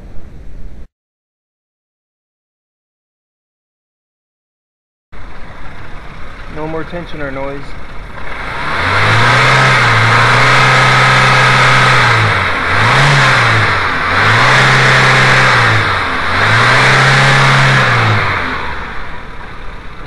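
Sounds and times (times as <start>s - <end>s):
car engine revving: 5.2s - 20.0s.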